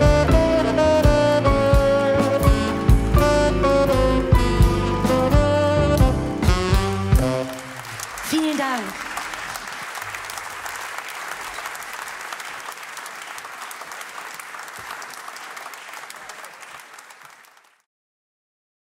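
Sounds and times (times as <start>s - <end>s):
audience applauding: 6.8s - 17.9s.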